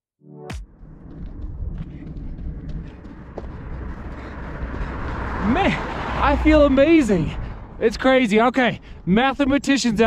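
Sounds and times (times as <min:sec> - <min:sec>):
running footsteps on road: 0:00.6 - 0:10.0
wind rumbling on microphone: 0:00.9 - 0:08.1.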